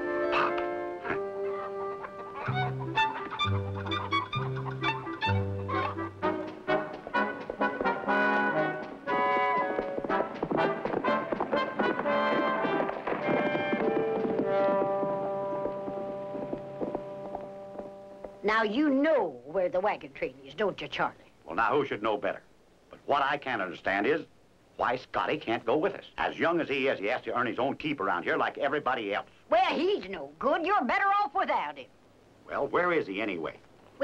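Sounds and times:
orchestral music with brass: 0:00.0 - 0:15.8.

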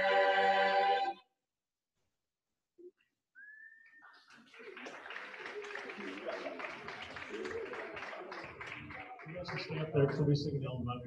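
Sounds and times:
crowd noise: 0:04.0 - 0:11.0.

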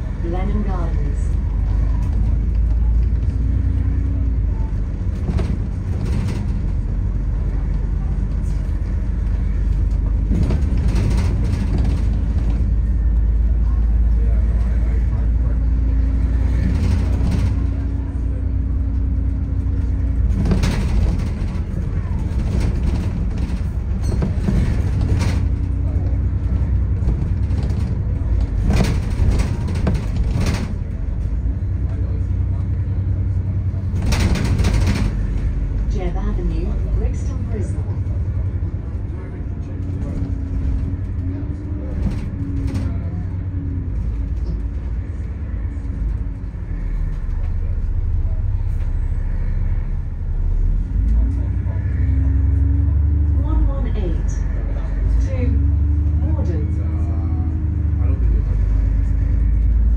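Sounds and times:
bus body knocks and rattles: 0:00.0 - 0:51.6
bus engine and road rumble: 0:00.0 - 0:59.9.

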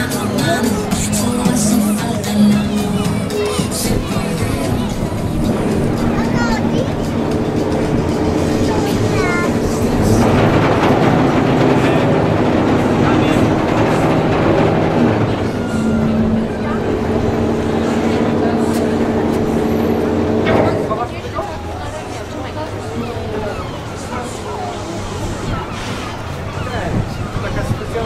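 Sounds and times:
rushing noise: 0:00.0 - 0:27.8
boat engine droning: 0:00.0 - 0:28.0
voices: 0:00.0 - 0:28.0.

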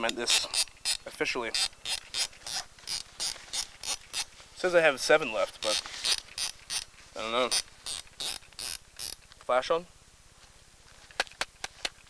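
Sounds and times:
camera thumbwheel ratcheting clicks: 0:00.0 - 0:04.3, 0:05.6 - 0:06.9, 0:07.5 - 0:09.2.

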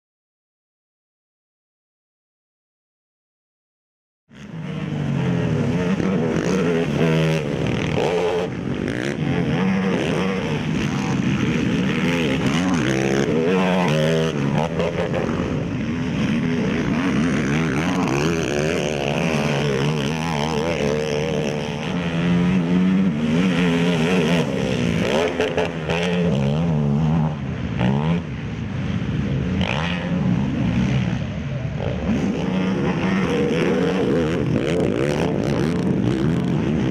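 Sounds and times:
atv engine revving: 0:04.3 - 0:36.9.

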